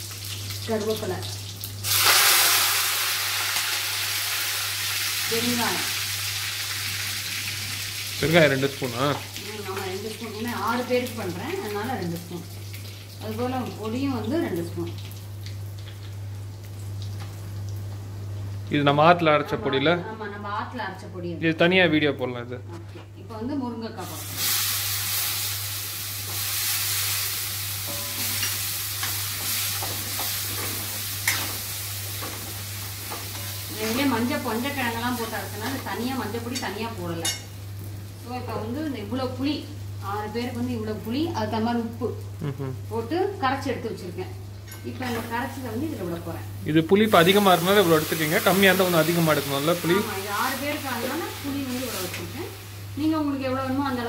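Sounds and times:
food sizzling in liquid: 0.0s - 18.6s, 24.0s - 54.0s.

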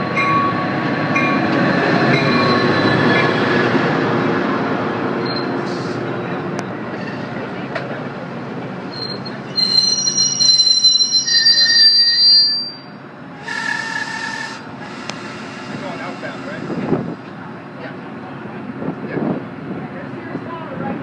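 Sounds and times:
train rumbling past: 0.0s - 21.0s
train brakes squealing: 1.7s - 3.7s, 5.2s - 6.0s, 8.9s - 16.7s.

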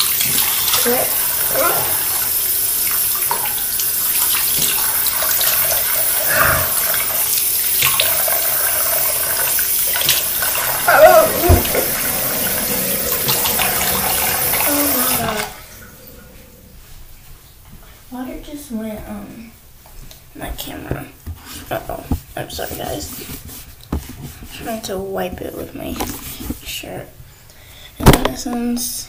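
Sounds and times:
sink tap running: 0.0s - 16.6s
water splashing: 0.0s - 16.8s.

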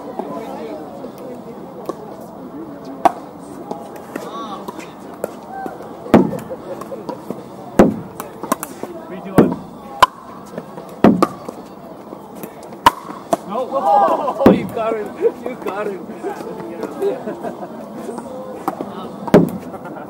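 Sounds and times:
distant voices: 0.0s - 20.0s
ball popping off paddles: 3.0s - 11.7s, 12.4s - 13.5s, 14.4s - 15.8s, 18.2s - 19.7s.

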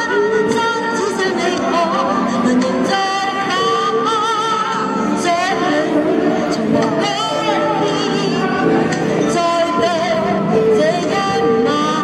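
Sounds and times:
backing music: 0.0s - 12.0s
woman singing pop ballad: 0.0s - 12.0s.

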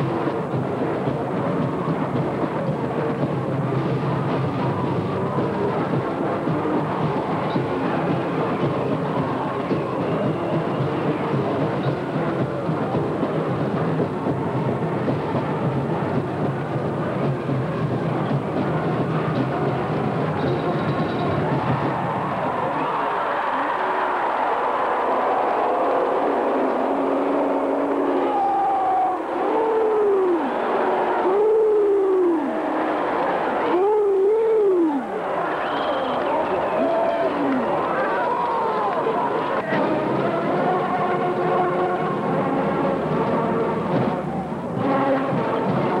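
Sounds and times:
marching band playing: 0.0s - 22.8s, 36.2s - 46.0s
stadium crowd din: 0.0s - 46.0s.

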